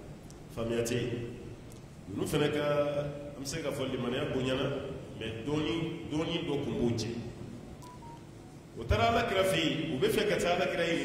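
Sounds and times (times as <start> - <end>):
short electronic beeps: 7.8 - 8.2
man speaking: 8.8 - 11.0.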